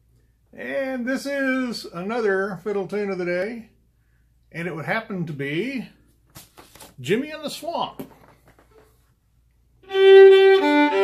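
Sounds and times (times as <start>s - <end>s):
fiddle playing a tune: 9.8s - 11.0s.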